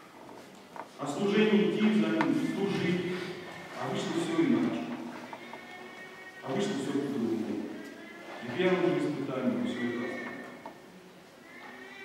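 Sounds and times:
man speaking: 1.0s - 5.0s, 6.4s - 7.8s, 8.4s - 10.5s.

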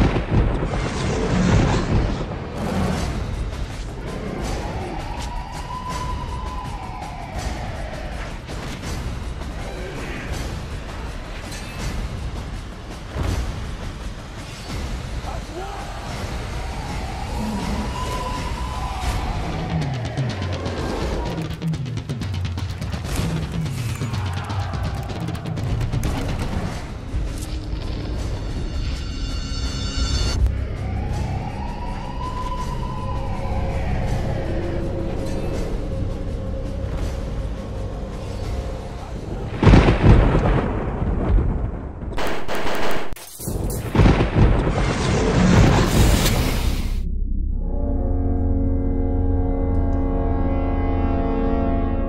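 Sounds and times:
deep rumbling booms: 0.0s - 3.6s, 39.4s - 42.3s, 43.8s - 46.3s.

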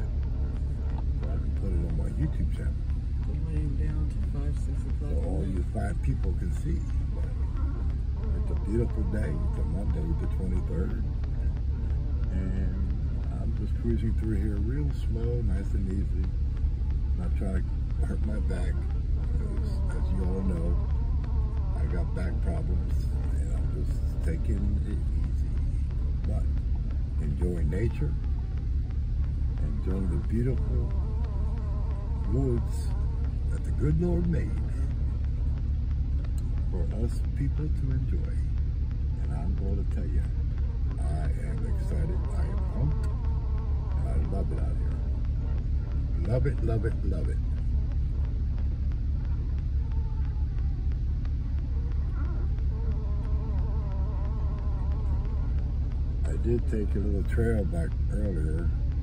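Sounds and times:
faint wavering buzz: 0.0s - 59.0s
truck engine and tyres rumbling: 0.0s - 59.0s.

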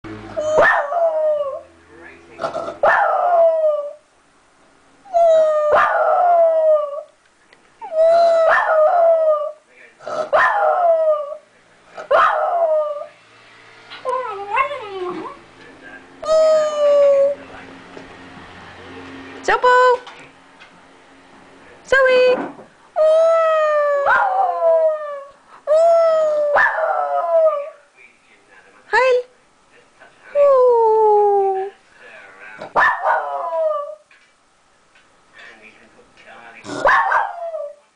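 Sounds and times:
small dog howling: 0.4s - 1.7s, 2.8s - 4.0s, 5.1s - 7.1s, 7.8s - 9.6s, 10.3s - 11.4s, 12.1s - 13.2s, 16.2s - 17.4s, 23.0s - 27.8s, 32.8s - 34.1s, 36.8s - 37.8s.

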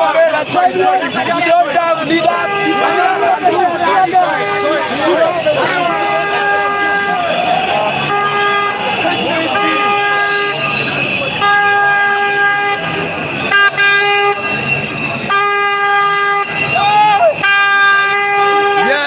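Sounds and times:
crowd voices: 0.0s - 19.0s
horn long blasts: 0.0s - 19.0s.

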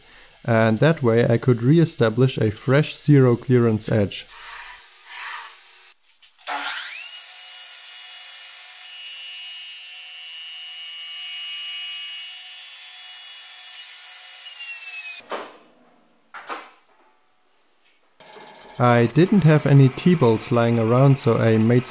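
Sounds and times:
table saw whine: 4.2s - 15.2s, 18.2s - 21.9s.

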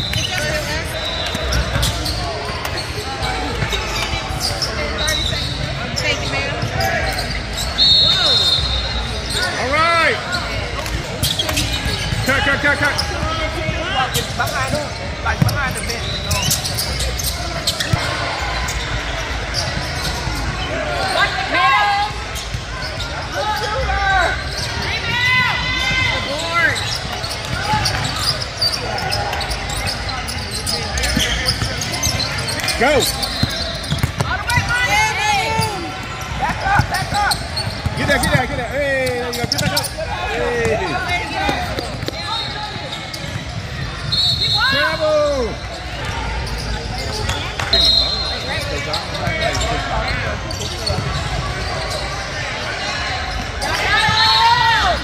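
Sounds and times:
voices calling out in echoing hall: 0.0s - 55.0s.

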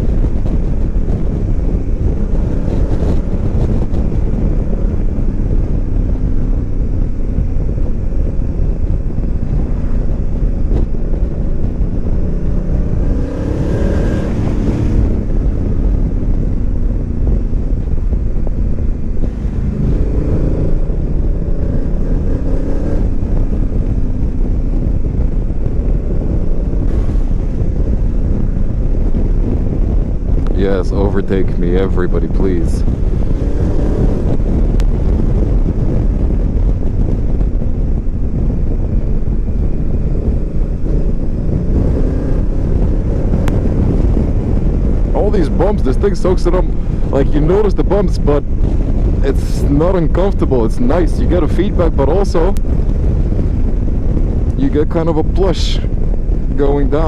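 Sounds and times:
motorcycle engine running: 0.0s - 57.0s
wind noise on microphone: 0.0s - 57.0s.

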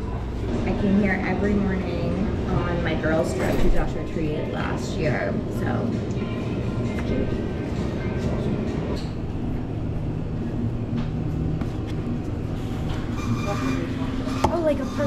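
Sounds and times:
voices: 0.0s - 9.0s
faint music: 0.0s - 15.0s.

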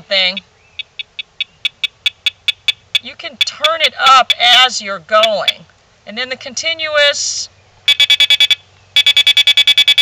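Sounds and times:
short high beeps: 7.9s - 10.0s.

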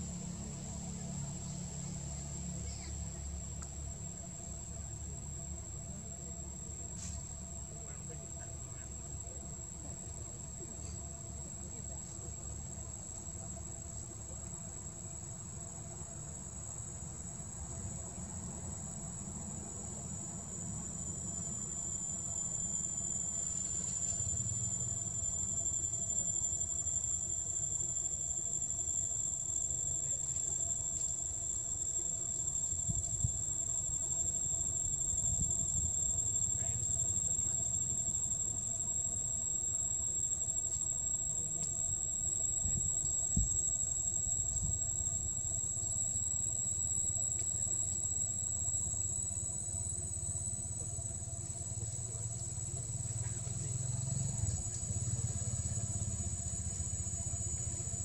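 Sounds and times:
insects droning: 0.0s - 58.0s.

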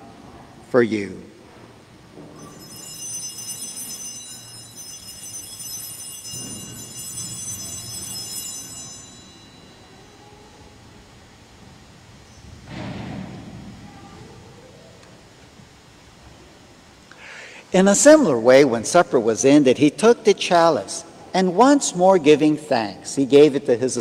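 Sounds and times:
small altar bells ringing: 2.3s - 10.6s.

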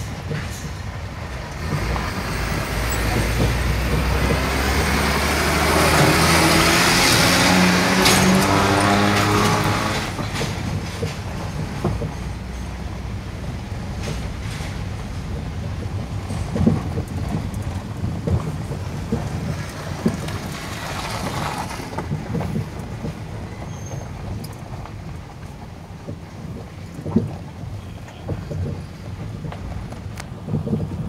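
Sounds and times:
bus passing: 0.0s - 31.0s
knocks and jolts in potholes: 0.0s - 31.0s
vehicle rumbling over broken road: 0.0s - 31.0s.

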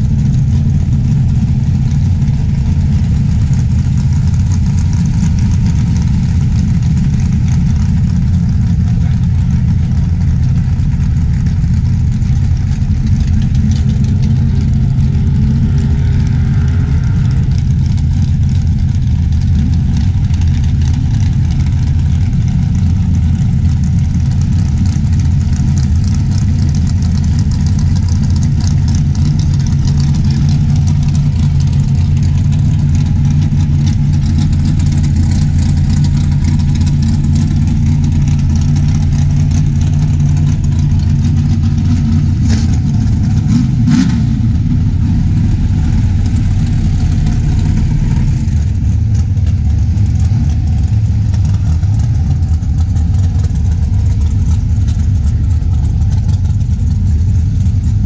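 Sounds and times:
race car engine idling: 0.0s - 58.0s.

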